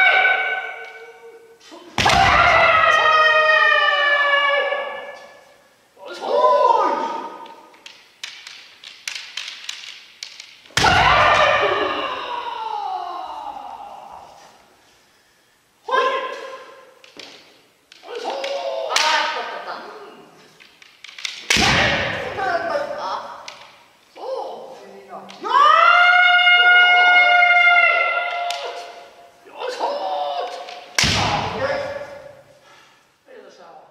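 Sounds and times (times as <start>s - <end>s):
person shouting: 10.8s - 14.6s, 18.0s - 20.4s, 25.4s - 32.4s
bamboo sword strike: 21.4s - 22.4s, 31.0s - 32.0s.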